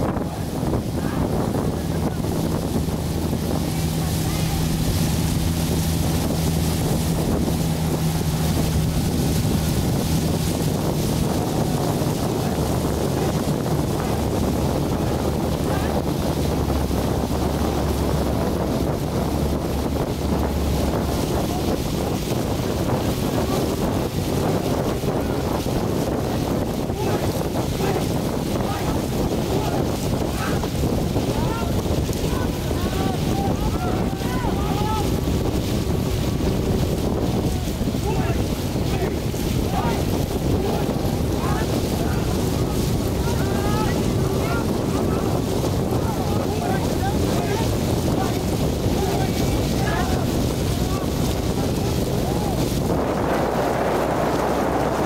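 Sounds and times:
steady low rumble: 0:00.0 - 0:55.0
wind buffeting microphone: 0:00.0 - 0:55.0.

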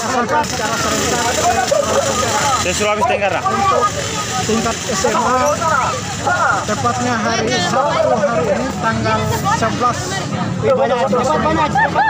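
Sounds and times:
man talking: 0:00.0 - 0:11.9.

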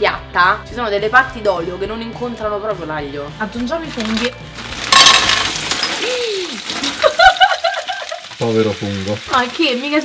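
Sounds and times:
mushrooms sizzling in frying pan: 0:05.6 - 0:10.0
person exclaiming ohh: 0:06.0 - 0:06.6
person giggling: 0:07.0 - 0:08.3.

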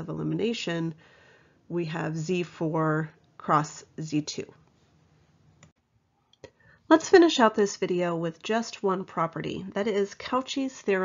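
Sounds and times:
woman speaking: 0:00.0 - 0:01.0, 0:01.7 - 0:04.6, 0:06.9 - 0:11.0.

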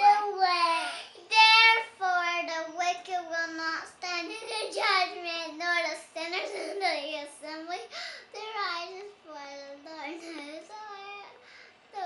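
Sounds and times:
girl singing: 0:00.0 - 0:11.4.

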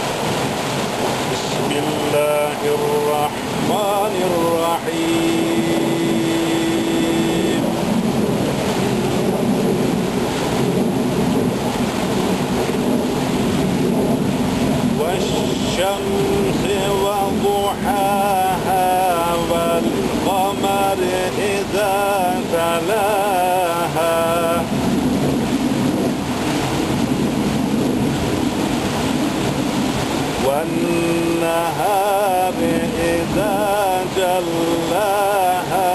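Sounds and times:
waterfall rushing: 0:00.0 - 0:35.9.

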